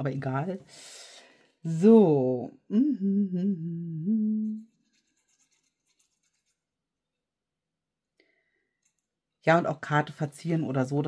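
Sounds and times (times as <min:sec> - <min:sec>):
woman humming: 0:02.5 - 0:04.8.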